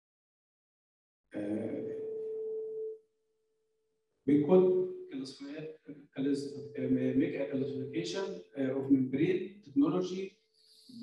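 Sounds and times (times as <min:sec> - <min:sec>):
man's drawn-out hesitation sound: 0:01.4 - 0:02.0, 0:04.3 - 0:05.6, 0:06.2 - 0:10.2.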